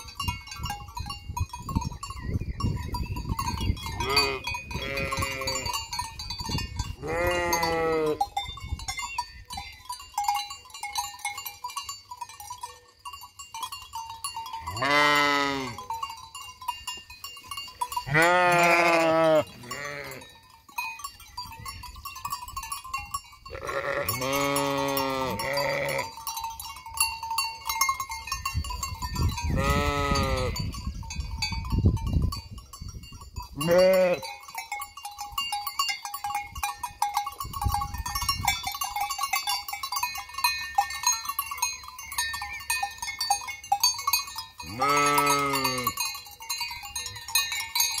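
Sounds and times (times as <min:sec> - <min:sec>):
sheep bells clinking: 0:00.0 - 0:48.0
sheep bleating: 0:04.0 - 0:05.7, 0:07.0 - 0:08.2, 0:14.7 - 0:15.8, 0:18.1 - 0:20.2, 0:23.5 - 0:26.1, 0:29.6 - 0:30.6, 0:44.7 - 0:46.0.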